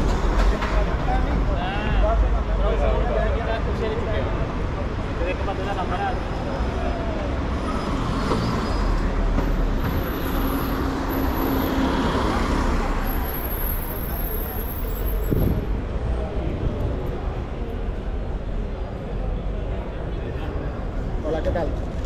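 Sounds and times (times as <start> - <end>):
street traffic: 0.0 - 22.0
people talking: 0.3 - 7.4.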